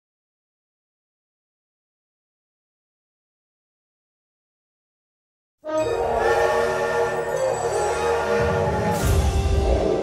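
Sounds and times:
steam locomotive whistle: 0:05.7 - 0:10.0.

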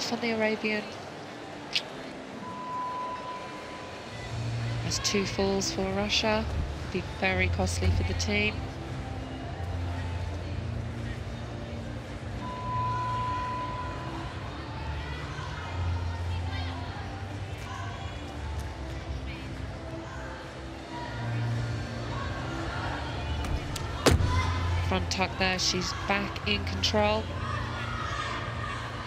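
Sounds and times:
crowd murmur: 0:08.5 - 0:29.0
gymnast landing thud: 0:23.4 - 0:24.6.

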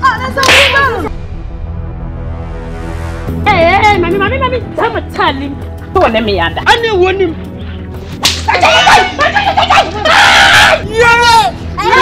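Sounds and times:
person screaming: 0:08.5 - 0:12.0.

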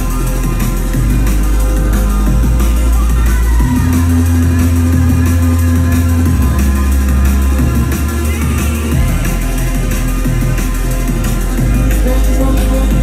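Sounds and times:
drum and bass music: 0:00.0 - 0:13.0
heavy sustained bass line: 0:00.0 - 0:13.0.

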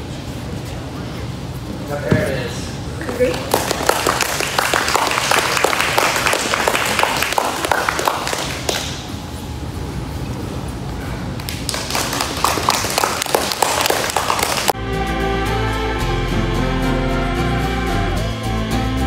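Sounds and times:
small crowd clapping: 0:03.0 - 0:09.2, 0:11.4 - 0:14.8
music: 0:14.8 - 0:19.0.

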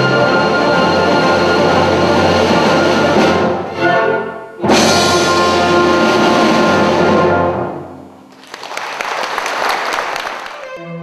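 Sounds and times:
string orchestra holding chords: 0:00.0 - 0:08.2.

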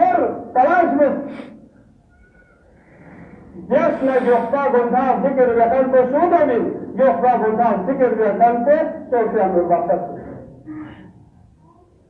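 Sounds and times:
man preaching: 0:00.0 - 0:01.5, 0:03.7 - 0:10.5.

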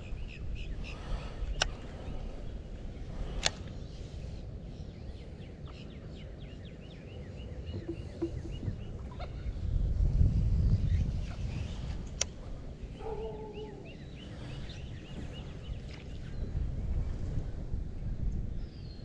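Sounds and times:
birds chirping: 0:00.0 - 0:09.8, 0:10.8 - 0:16.6
wind rumbling on microphone: 0:00.0 - 0:19.0
sharp click: 0:03.3 - 0:03.7.

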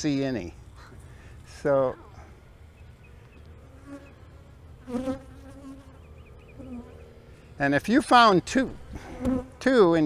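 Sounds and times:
bees buzzing past: 0:03.0 - 0:07.4, 0:08.8 - 0:09.6.

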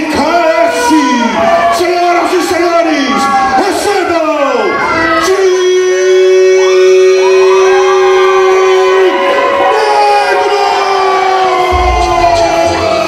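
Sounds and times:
crowd noise: 0:00.0 - 0:13.0
low rumble: 0:11.7 - 0:13.0.

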